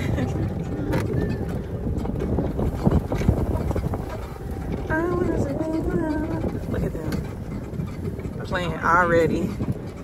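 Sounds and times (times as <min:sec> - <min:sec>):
cart rumbling over grass: 0:00.0 - 0:10.0
wind buffeting microphone: 0:00.0 - 0:10.0.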